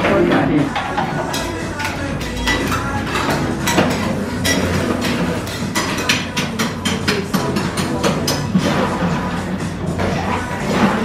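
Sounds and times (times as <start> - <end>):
metal spatulas clacking on steel: 0.8 - 8.6.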